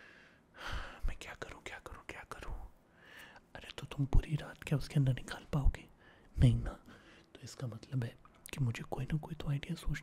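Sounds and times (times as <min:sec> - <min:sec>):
man whispering: 0:00.9 - 0:02.8, 0:03.4 - 0:10.0.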